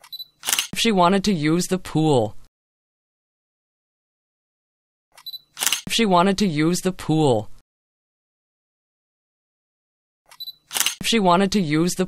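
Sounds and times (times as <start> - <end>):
person speaking: 0.7 - 2.5, 5.8 - 7.6, 11.0 - 12.0.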